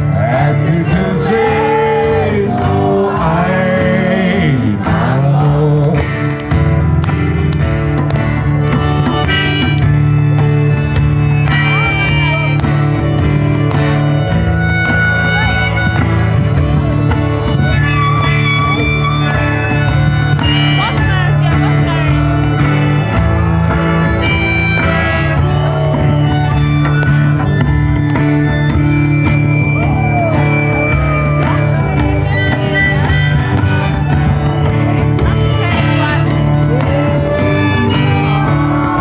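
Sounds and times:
acoustic guitars strumming: 0.0s - 39.0s
harmonica playing held notes: 8.4s - 39.0s.

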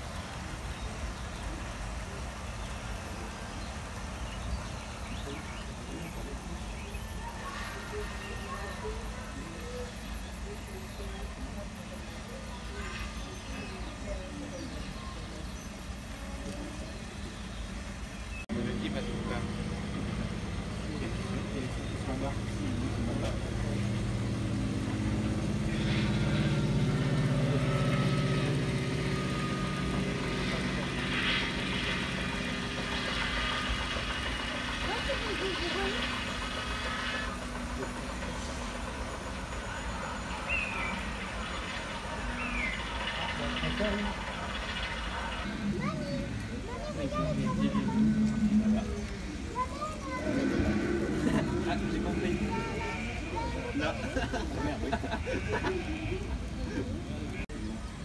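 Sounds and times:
low engine-like hum: 0.0s - 58.0s
murmur of voices: 5.0s - 58.0s.

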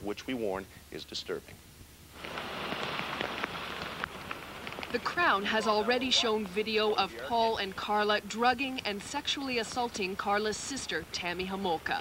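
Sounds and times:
steady rain falling: 1.9s - 12.0s
raindrops tapping: 2.2s - 12.0s.

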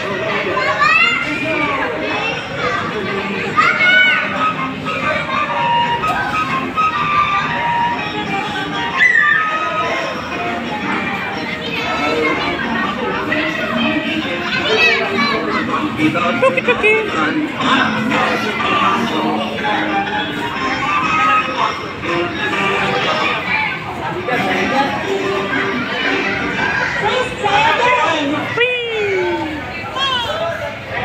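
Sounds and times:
children's voices and high calls: 0.0s - 16.3s, 17.1s - 30.7s
carousel music: 0.0s - 31.0s
general chatter: 0.0s - 31.0s.

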